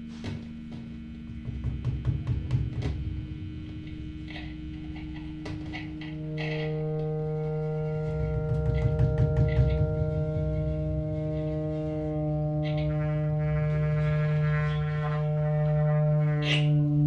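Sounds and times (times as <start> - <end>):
high sustained tones: 0.0 - 17.0
low drone: 0.0 - 17.0.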